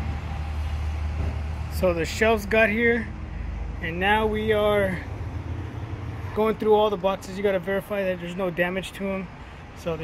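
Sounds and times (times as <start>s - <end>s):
road traffic rumble: 0.0s - 10.0s
man speaking: 1.8s - 3.2s, 3.8s - 5.1s, 6.3s - 10.0s.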